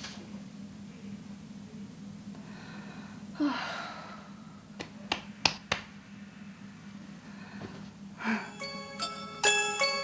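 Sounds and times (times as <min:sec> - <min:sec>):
low steady hum: 0:00.0 - 0:10.0
woman breathing out: 0:02.4 - 0:04.6, 0:07.3 - 0:08.6.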